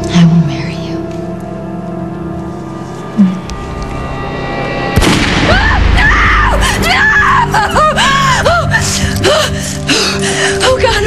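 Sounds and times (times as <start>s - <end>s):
woman sobbing: 5.8s - 11.0s.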